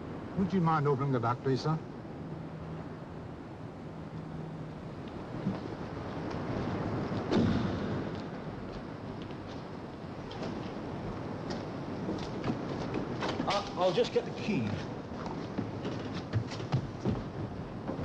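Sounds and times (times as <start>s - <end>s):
low rumbling background noise: 0.0s - 18.0s.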